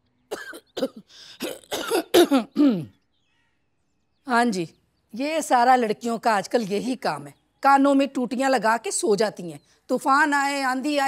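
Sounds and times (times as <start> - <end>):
woman clearing throat: 0.3 - 3.0
woman coughing: 0.3 - 3.0.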